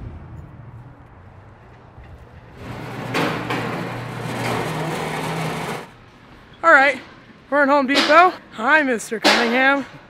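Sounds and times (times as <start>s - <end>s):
steady low hum: 0.0s - 10.0s
metal cart rattling over concrete: 2.3s - 6.0s.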